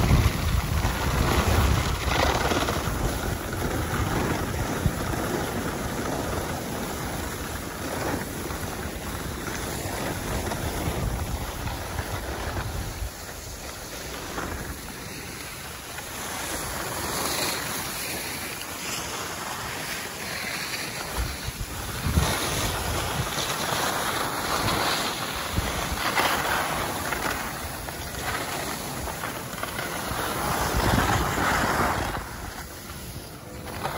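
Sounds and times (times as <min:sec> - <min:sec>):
wind buffeting microphone: 0:00.0 - 0:15.0, 0:21.0 - 0:33.9
skis sliding on snow: 0:00.0 - 0:33.9.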